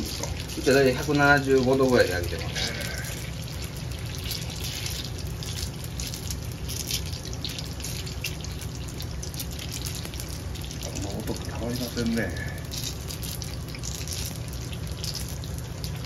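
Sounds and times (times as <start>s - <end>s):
deep-frying sizzle with pops: 0.0s - 16.0s.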